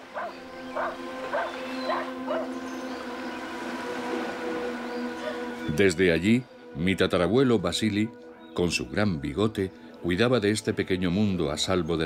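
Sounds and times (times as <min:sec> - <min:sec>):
soft background music: 0:00.0 - 0:12.0
dog yapping: 0:00.2 - 0:02.5.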